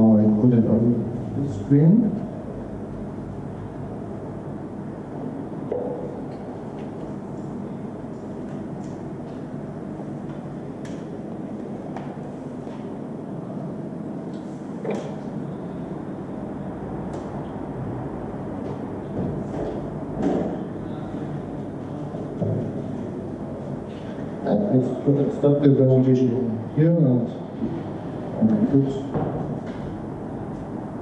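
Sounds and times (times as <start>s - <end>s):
steady low room noise: 0.0s - 31.0s.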